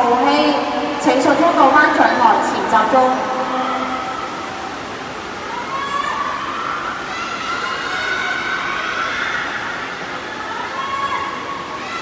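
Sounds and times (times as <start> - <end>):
crowd and pool noise: 0.0 - 12.0
spectators cheering and shouting: 5.4 - 12.0.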